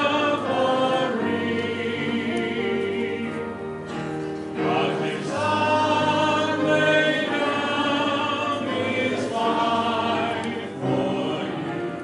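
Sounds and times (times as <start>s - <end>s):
congregation singing a hymn: 0.0s - 12.0s.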